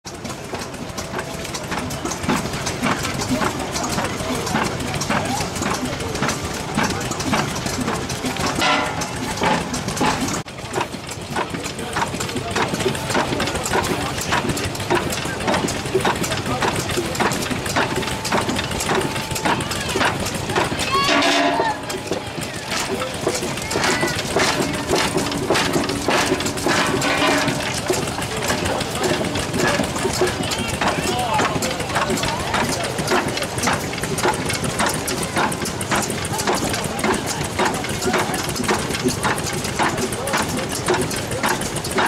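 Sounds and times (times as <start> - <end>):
steam traction engine running: 0.0 - 42.0
rock crusher clattering: 0.1 - 42.0.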